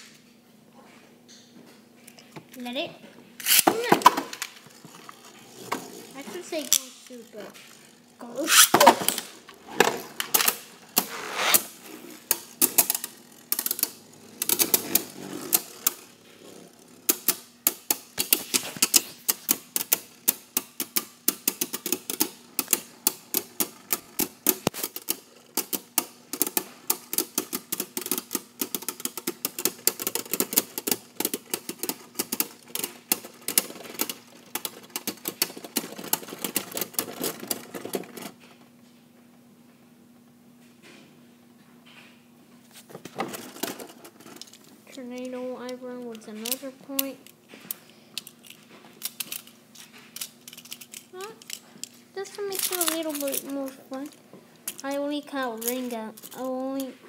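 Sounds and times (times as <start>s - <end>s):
spinning tops clicking together: 3.4s - 38.2s, 44.3s - 55.0s
spinning tops clattering in stadium: 3.4s - 38.3s.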